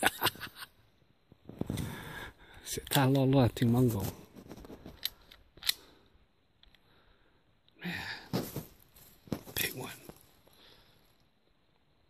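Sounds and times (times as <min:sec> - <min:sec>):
shotgun metallic clicks: 0:05.0 - 0:06.0.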